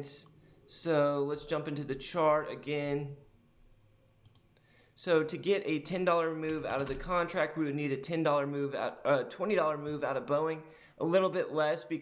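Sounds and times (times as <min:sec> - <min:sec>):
computer mouse clicks: 0:04.2 - 0:04.5.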